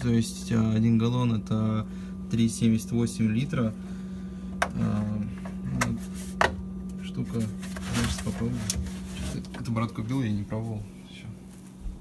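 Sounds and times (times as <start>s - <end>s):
refrigerator hum: 0.0s - 12.0s.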